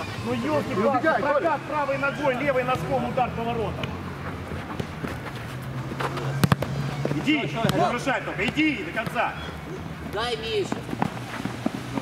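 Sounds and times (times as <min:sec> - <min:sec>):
ball touches on turf: 0:06.0 - 0:07.8.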